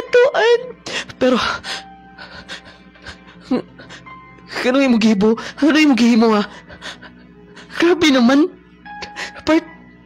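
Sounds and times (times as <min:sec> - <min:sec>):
faint background music: 0:00.0 - 0:10.0
man sobbing and gasping: 0:00.9 - 0:04.2, 0:06.5 - 0:07.7.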